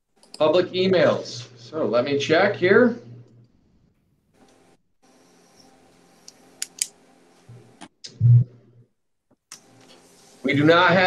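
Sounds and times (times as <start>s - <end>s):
faint steady hum: 0.1s - 11.0s
computer mouse clicks: 5.6s - 6.9s.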